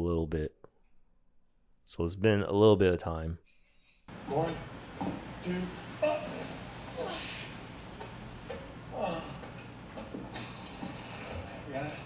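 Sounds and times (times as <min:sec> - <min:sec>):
climbing scuffs and knocks: 0:04.1 - 0:07.0, 0:07.8 - 0:11.7
girl grunting with effort: 0:06.0 - 0:07.6.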